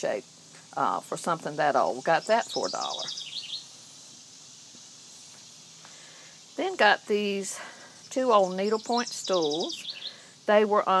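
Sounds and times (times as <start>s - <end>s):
faint outdoor background noise: 0.0s - 11.0s
small bird high-pitched trill: 2.1s - 3.7s, 8.0s - 10.2s.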